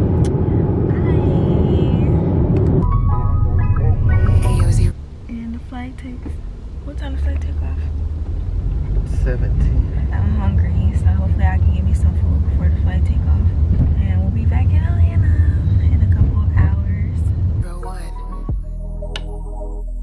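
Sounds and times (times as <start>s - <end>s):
car rumble inside cabin: 0.0s - 18.7s
person talking: 4.1s - 4.9s, 17.6s - 18.2s.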